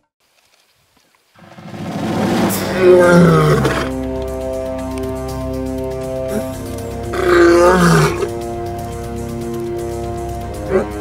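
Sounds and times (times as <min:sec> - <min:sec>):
lion roaring: 0:01.4 - 0:04.0, 0:06.3 - 0:08.4
music of sustained chords: 0:01.4 - 0:11.0.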